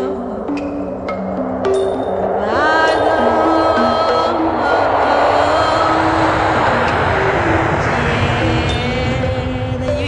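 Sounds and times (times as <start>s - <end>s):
jet airliner flying overhead: 0.0s - 10.0s
music with long held notes: 0.0s - 10.0s.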